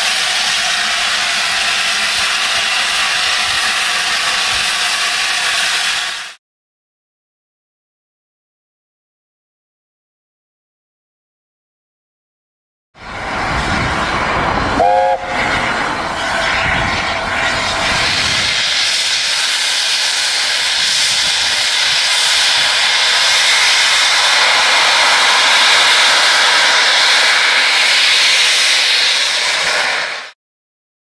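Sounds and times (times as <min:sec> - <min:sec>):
steam locomotive hissing steam: 0:00.0 - 0:06.4, 0:13.0 - 0:30.4.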